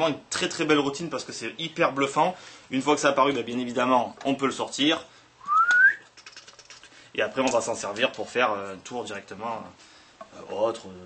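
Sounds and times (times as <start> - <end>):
short rising whistle: 5.4 - 6.0.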